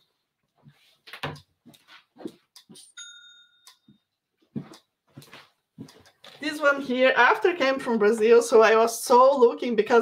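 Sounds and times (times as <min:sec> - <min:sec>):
clear ringing ding: 0:03.0 - 0:03.9
footsteps: 0:04.5 - 0:07.0.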